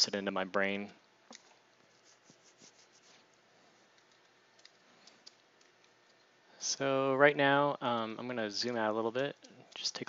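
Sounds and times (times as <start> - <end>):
stylus tapping and rubbing tablet: 1.8 - 3.3.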